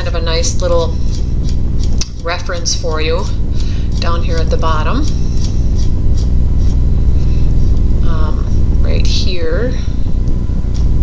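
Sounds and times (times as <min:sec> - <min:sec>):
low rumbling hum: 0:00.0 - 0:11.0.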